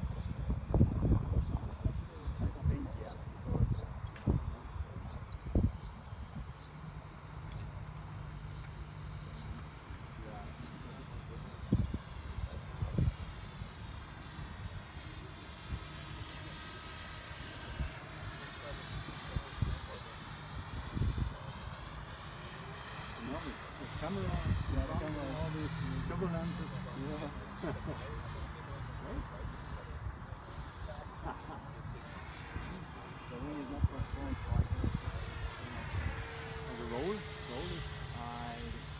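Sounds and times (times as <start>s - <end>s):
model jet fan whine: 0.0s - 38.9s.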